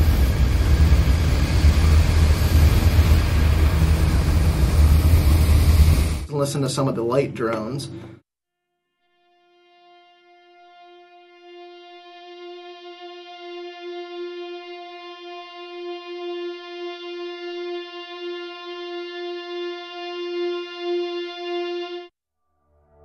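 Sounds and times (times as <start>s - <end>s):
sustained guitar drone: 0.0s - 8.1s, 9.7s - 22.1s.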